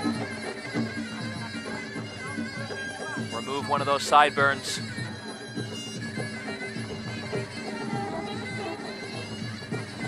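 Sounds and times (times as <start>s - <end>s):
hand drums beat: 0.0s - 10.0s
reed pipe wailing melody: 0.0s - 10.0s.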